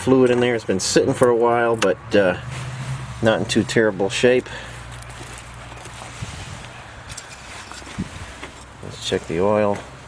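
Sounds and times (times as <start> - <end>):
wind buffeting microphone: 6.1 - 7.2, 7.8 - 8.4.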